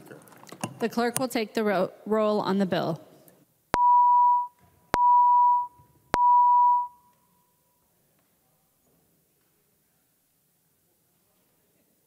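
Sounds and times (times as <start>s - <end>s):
electronic beeps: 3.8s - 7.1s.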